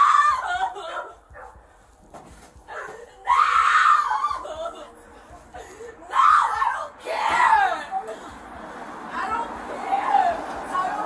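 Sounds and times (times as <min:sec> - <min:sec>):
woman screaming: 0:00.0 - 0:01.2, 0:02.7 - 0:04.9, 0:06.0 - 0:08.0.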